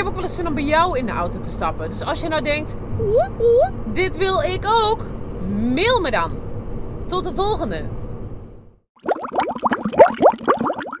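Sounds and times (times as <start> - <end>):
rising bubbling bloops: 9.0 - 11.0.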